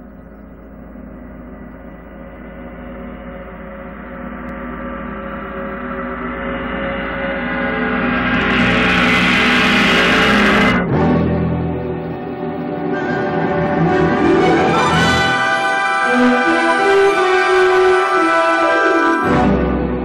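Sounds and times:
gong with shimmering overtones: 0.5 - 12.4.

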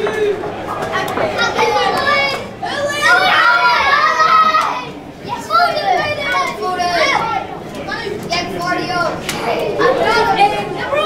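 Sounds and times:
young children shouting: 1.4 - 11.0.

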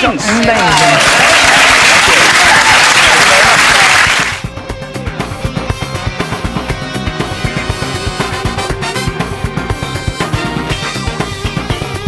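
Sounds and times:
studio audience applauding: 0.0 - 4.5
background music with steady beat: 4.4 - 12.0.

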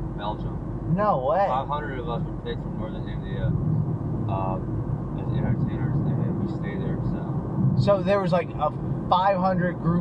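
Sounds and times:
road and engine rumble in car: 0.0 - 10.0.

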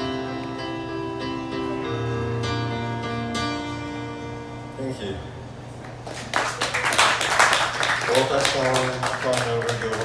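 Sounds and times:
small audience clapping: 5.8 - 10.0.

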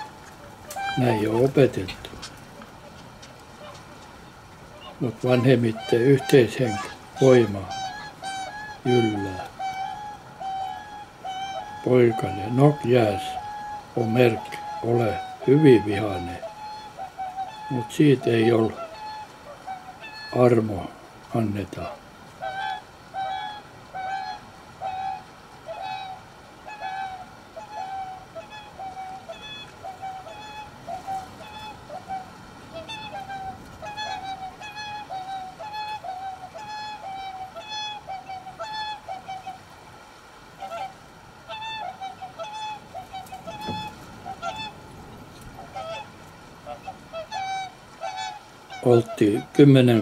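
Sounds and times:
swans bugling honks: 0.0 - 50.0.

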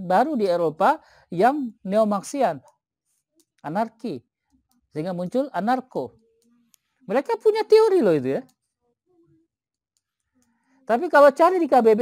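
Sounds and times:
man speaking: 0.0 - 2.6, 3.6 - 4.2, 4.9 - 6.2.

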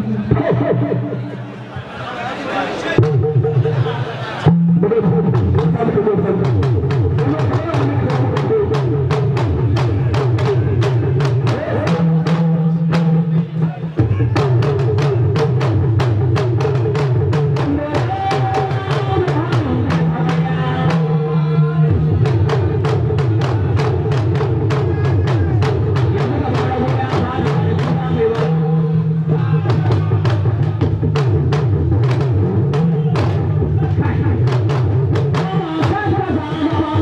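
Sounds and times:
drum-led music: 3.0 - 37.0.

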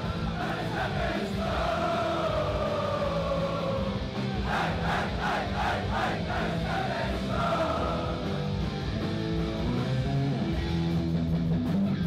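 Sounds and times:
live hardcore punk band: 0.0 - 12.0.

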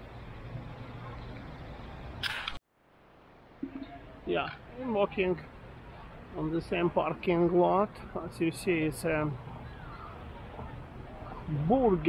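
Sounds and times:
parking lot background noise: 0.0 - 12.0.

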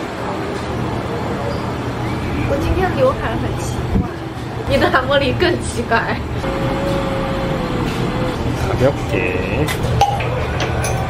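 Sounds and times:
restaurant room noise: 0.0 - 11.0.

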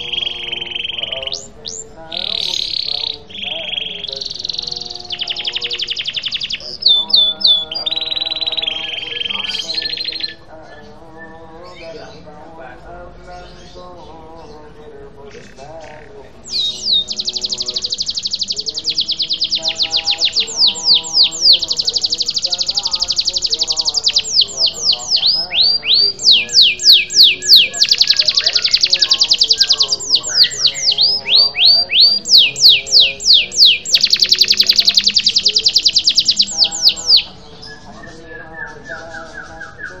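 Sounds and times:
faint bird chirps: 0.0 - 12.2, 15.3 - 40.0
canary singing: 0.0 - 40.0.

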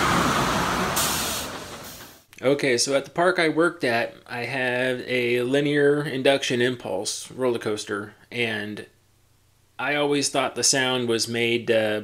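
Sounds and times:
rushing vehicle-like noise: 0.0 - 2.2
sharp burst of hiss: 0.0 - 2.3.

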